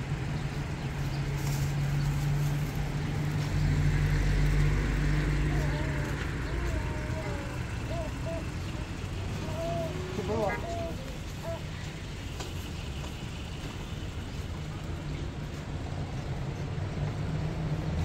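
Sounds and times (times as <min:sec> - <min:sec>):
vehicle engine passing: 0:00.0 - 0:14.8
people's voices: 0:02.9 - 0:15.7.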